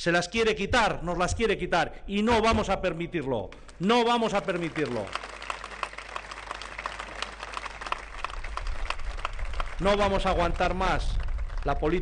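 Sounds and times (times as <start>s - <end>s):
crowd applauding: 3.7s - 12.0s.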